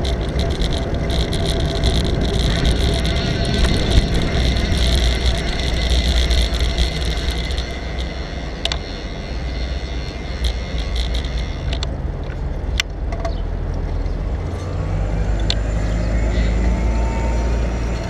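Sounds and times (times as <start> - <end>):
wind on microphone: 0.0 - 11.9
sharp clicks: 0.0 - 13.4
bicycle road rumble: 0.0 - 18.0
light street traffic: 0.0 - 18.0.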